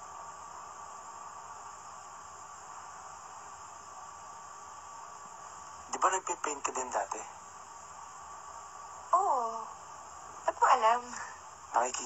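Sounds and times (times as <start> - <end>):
film soundtrack hiss and hum: 0.0 - 12.0.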